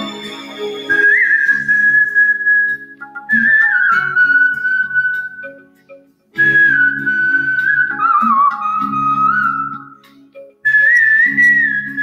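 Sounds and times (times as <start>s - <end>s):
person whistling a melody: 0.0s - 5.6s, 6.4s - 10.0s, 10.7s - 12.0s
musical accompaniment: 0.0s - 12.0s.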